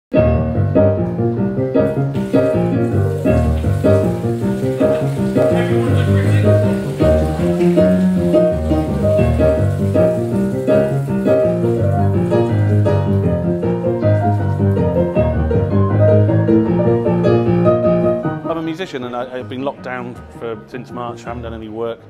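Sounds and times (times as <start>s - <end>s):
piano music: 0.1s - 22.0s.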